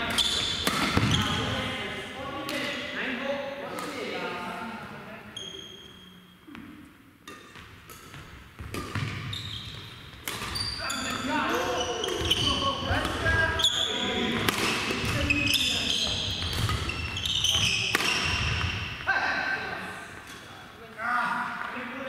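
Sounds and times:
shoes squeaking on floor: 0:00.0 - 0:01.5, 0:05.3 - 0:06.7, 0:07.6 - 0:19.1
racket hitting shuttlecock: 0:00.1 - 0:01.5, 0:06.5 - 0:13.6, 0:14.3 - 0:19.1.

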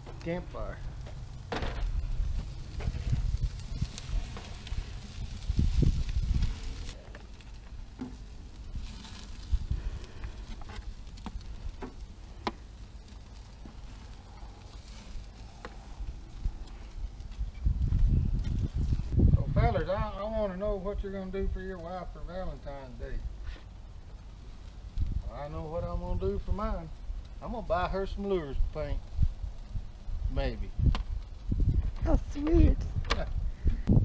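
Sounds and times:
wind buffeting microphone: 0:00.0 - 0:07.0, 0:08.6 - 0:11.9, 0:14.2 - 0:21.6, 0:24.8 - 0:27.4, 0:28.2 - 0:34.0
meat sizzling on a grate: 0:00.0 - 0:32.8
wood fire crackling: 0:00.0 - 0:34.0.

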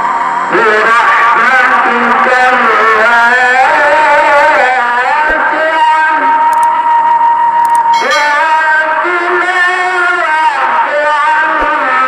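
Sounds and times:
person chanting ornamented line: 0:07.9 - 0:12.0.

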